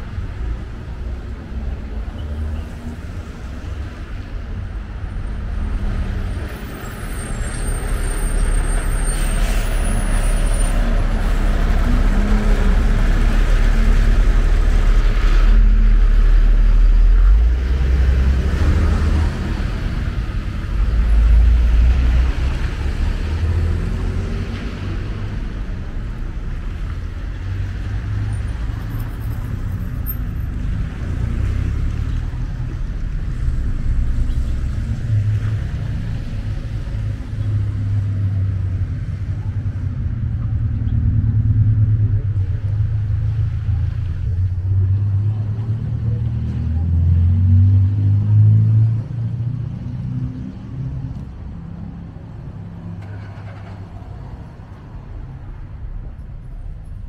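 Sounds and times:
low traffic rumble: 0.0s - 57.0s.

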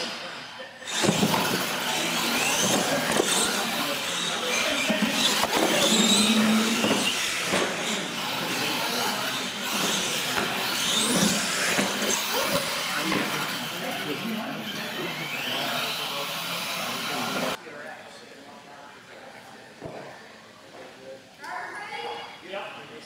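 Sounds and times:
rc truck motors racing: 0.0s - 17.6s.

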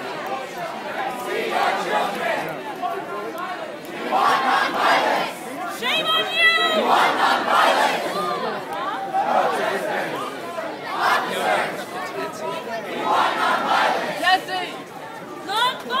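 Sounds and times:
crowd shouting and yelling: 0.0s - 16.0s.

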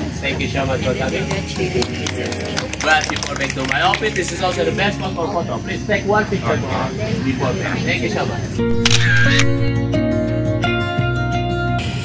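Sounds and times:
background music: 0.0s - 12.0s
camera shutter sound effect: 8.7s - 9.8s.

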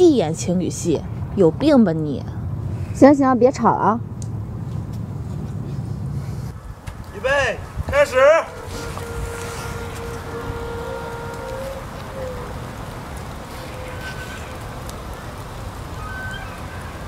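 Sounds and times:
outdoor background rumble with hiss: 0.0s - 17.0s.

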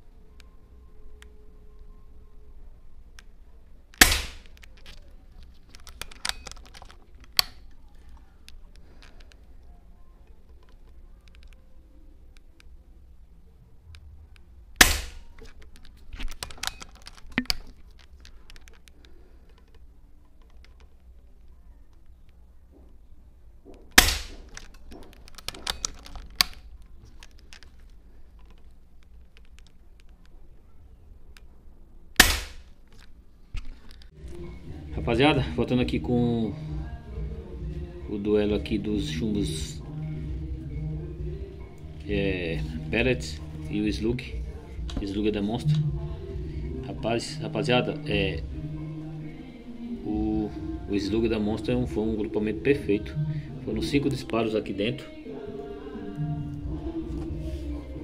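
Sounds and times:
air rifle shot: 4.0s - 4.5s, 14.8s - 15.3s, 24.0s - 24.4s, 32.2s - 32.7s.

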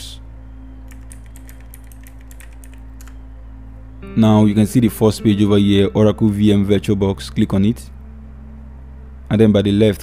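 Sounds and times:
keyboard typing: 0.9s - 3.2s.

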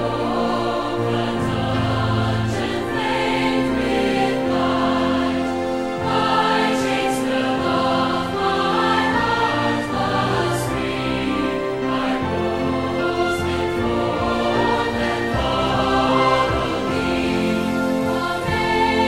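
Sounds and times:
choir singing a hymn: 0.0s - 19.0s
musical accompaniment: 0.0s - 19.0s.

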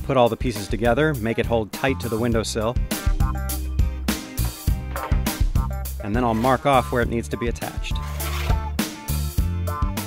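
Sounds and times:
instrumental music with bass: 0.0s - 10.0s.

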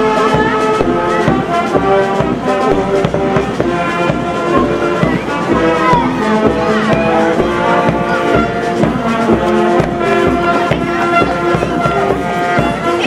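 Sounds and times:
bass drum beat: 0.0s - 13.0s
brass music: 0.0s - 13.0s
faint voices: 0.0s - 13.0s.

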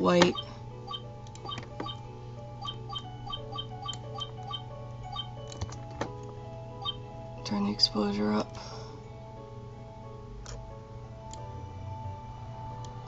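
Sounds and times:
plucked background music: 0.0s - 13.0s
steady low hum: 0.0s - 13.0s.

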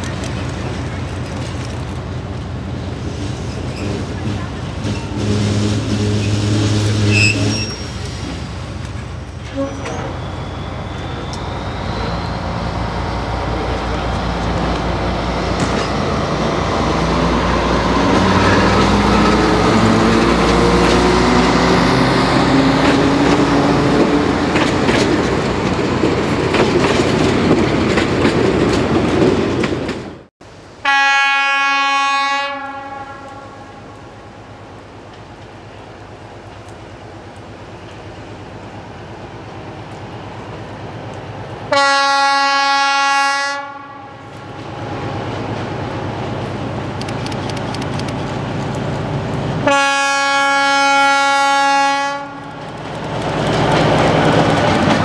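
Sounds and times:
rail clatter: 0.0s - 30.2s, 44.3s - 49.7s, 52.2s - 55.0s
diesel locomotive accelerating: 0.0s - 30.8s, 32.6s - 55.0s
locomotive horn blasts: 5.0s - 7.9s, 30.8s - 34.0s, 41.7s - 44.3s, 49.6s - 52.6s.

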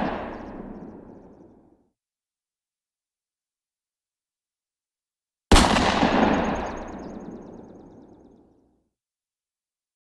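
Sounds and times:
loud explosion blast: 5.5s - 7.5s.

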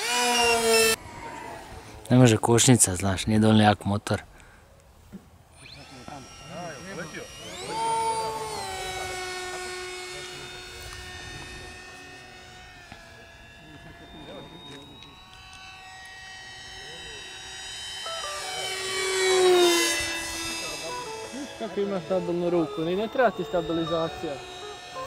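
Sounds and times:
model plane motor and propeller: 0.0s - 3.8s, 5.4s - 25.0s.

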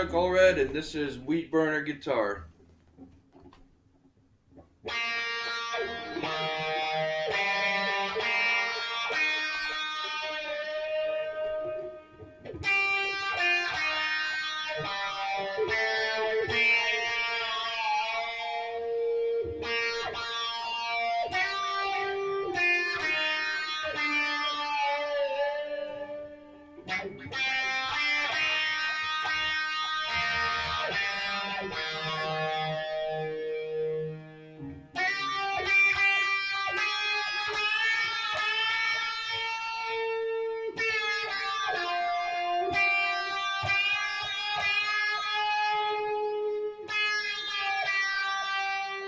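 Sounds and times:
homemade guitar strummed: 4.6s - 49.0s.

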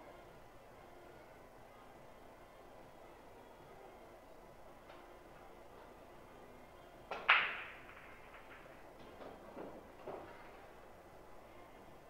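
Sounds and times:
cue tapping ball: 7.1s - 10.6s
pool balls clacking: 7.1s - 10.6s.

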